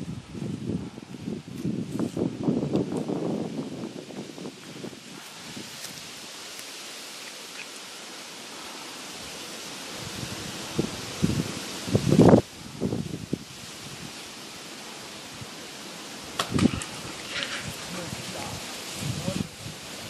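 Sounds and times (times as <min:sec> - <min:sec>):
steady outdoor hiss: 0:00.0 - 0:20.0.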